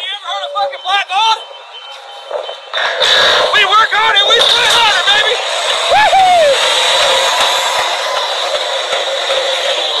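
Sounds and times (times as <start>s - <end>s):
rig machinery running: 1.2s - 10.0s.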